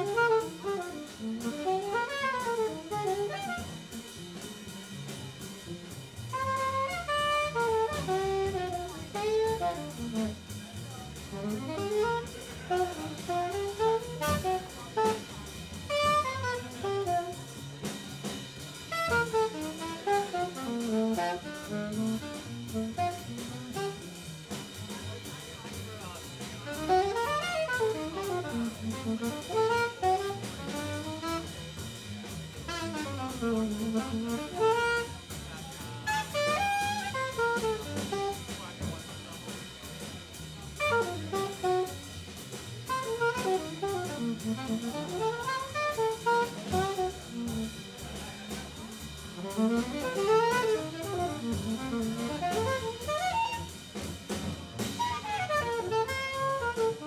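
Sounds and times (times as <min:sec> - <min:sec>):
saxophone solo: 0:00.0 - 0:04.2, 0:05.4 - 0:24.7, 0:26.6 - 0:35.4, 0:36.0 - 0:38.9, 0:40.7 - 0:48.1, 0:49.3 - 0:57.0
plucked upright bass: 0:00.0 - 0:25.5, 0:26.2 - 0:35.5, 0:36.1 - 0:57.0
drum kit keeping time: 0:00.0 - 0:57.0.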